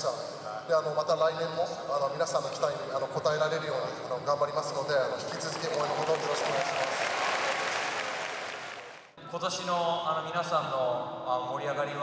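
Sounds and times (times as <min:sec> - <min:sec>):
audience applauding: 0:05.3 - 0:09.1.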